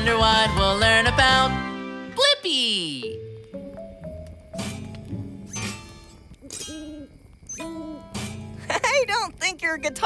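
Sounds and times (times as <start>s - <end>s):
cartoon owl hoots: 6.4s - 8.2s.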